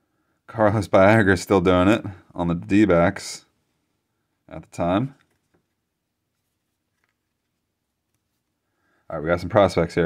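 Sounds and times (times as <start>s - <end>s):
cards being shuffled: 5.2s - 8.6s.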